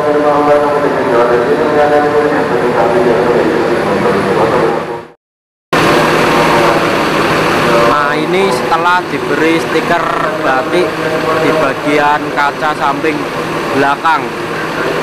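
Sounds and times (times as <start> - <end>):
vehicle engine droning hum: 0.0 - 5.2, 5.8 - 15.0
steady rushing noise: 5.8 - 15.0.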